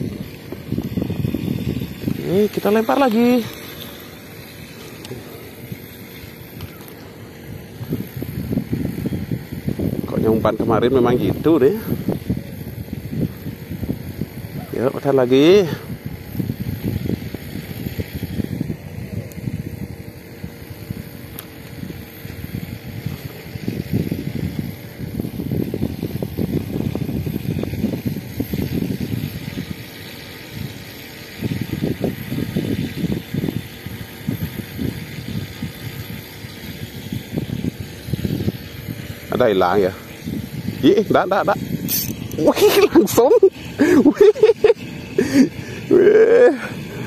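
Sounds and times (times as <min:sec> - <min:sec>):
wind buffeting microphone: 0:00.0 - 0:47.0.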